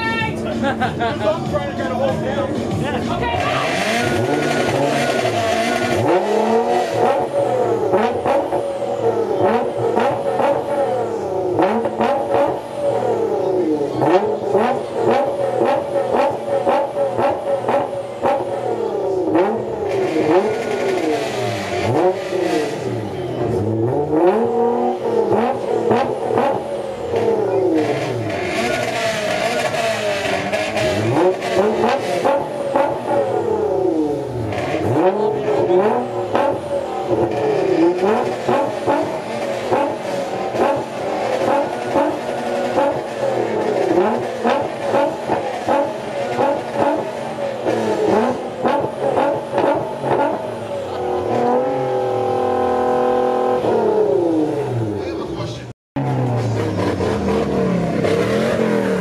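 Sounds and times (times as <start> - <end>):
car engine revving: 0.0 - 59.0
exhaust crackles: 0.2 - 59.0.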